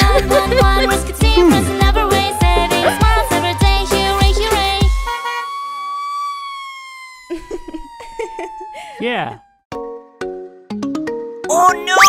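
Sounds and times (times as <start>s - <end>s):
cartoon siren sliding down: 2.3s - 9.7s.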